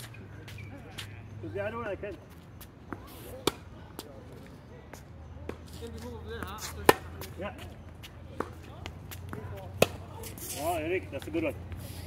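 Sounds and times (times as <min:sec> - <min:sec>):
tennis ball hits and bounces: 0:02.9 - 0:04.1, 0:05.4 - 0:11.8.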